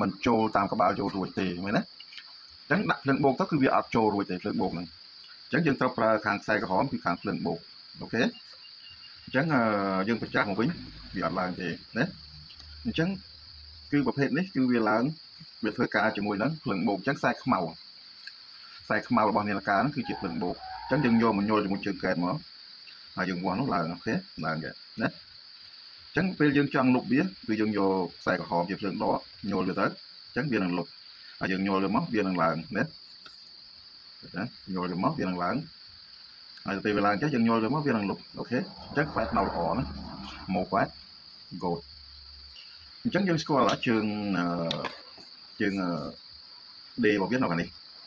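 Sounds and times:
man speaking: 0.0 - 1.9, 5.5 - 8.4, 9.3 - 12.2, 36.7 - 40.9, 43.1 - 45.0, 45.6 - 46.2, 47.0 - 47.7
crickets trilling: 0.0 - 48.0
high-pitched insect drone: 0.0 - 48.0
low hum: 38.3 - 40.7.

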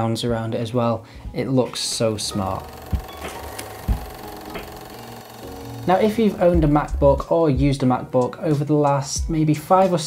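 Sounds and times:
mechanical whirring with low hum: 2.0 - 7.1.

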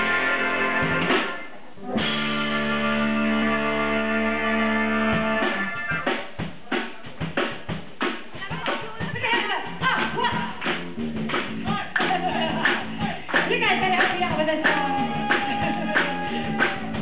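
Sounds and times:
drum kit rapid hits: 0.0 - 2.9, 5.1 - 17.0
live rock band: 0.0 - 17.0.

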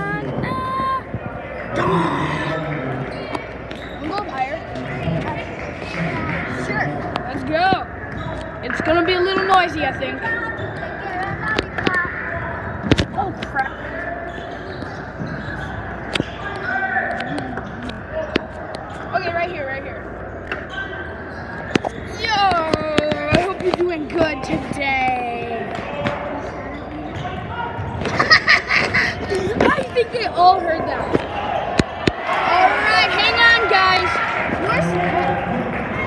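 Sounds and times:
basketballs bouncing on gym floor: 21.7 - 26.3.

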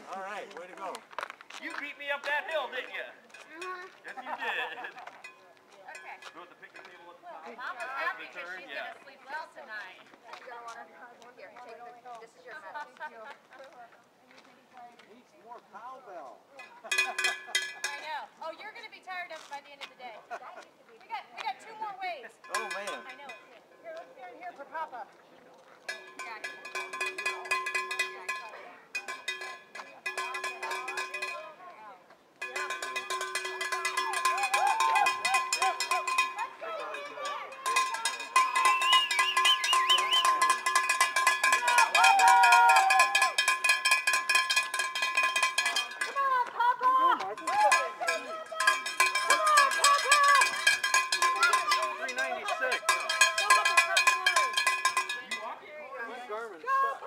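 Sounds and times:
cowbell shaken rapidly: 3.3 - 6.9, 7.5 - 8.8, 16.6 - 18.3, 22.3 - 23.5, 25.9 - 31.6, 32.4 - 46.4, 47.2 - 55.6
voices calling out: 25.8 - 31.8, 32.4 - 57.0.

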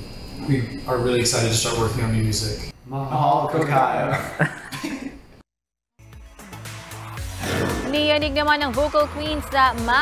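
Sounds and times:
men laughing: 4.0 - 5.3.

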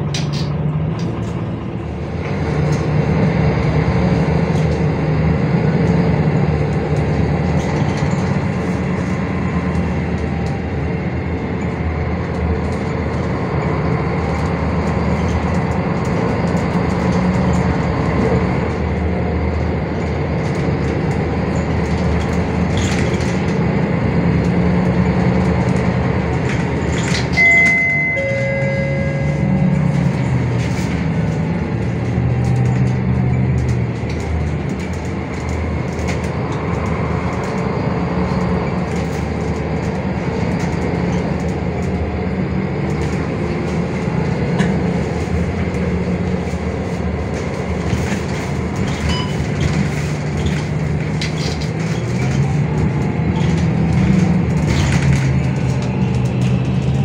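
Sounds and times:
bus diesel engine running: 0.0 - 57.0
road noise: 0.0 - 57.0
short electronic chime: 27.4 - 29.7.

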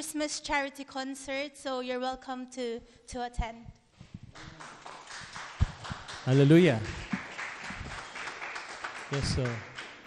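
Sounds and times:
light clapping: 4.3 - 10.0.

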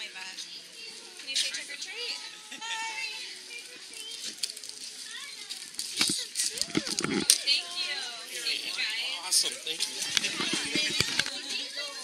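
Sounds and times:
crowd chatter: 0.0 - 12.0.

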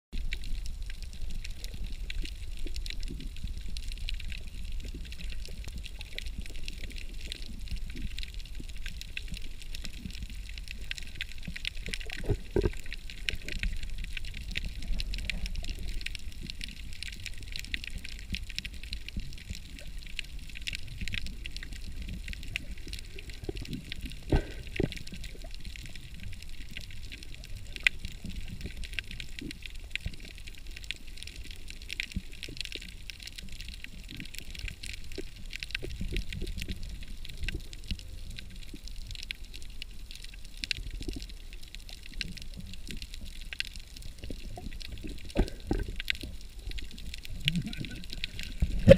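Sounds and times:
crackle of small clicks: 0.2 - 48.9
muffled underwater rumble: 0.2 - 48.9.

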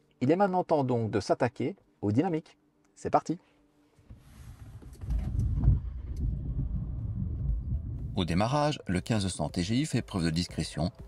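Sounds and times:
car engine starting: 4.5 - 8.1.

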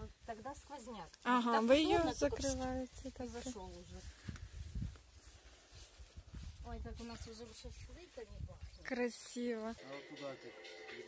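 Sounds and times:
footsteps walking outdoors: 0.0 - 10.3.

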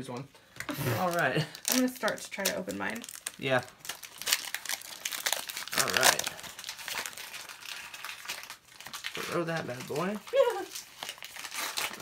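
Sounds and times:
foil wrapper crinkling: 1.0 - 12.0.

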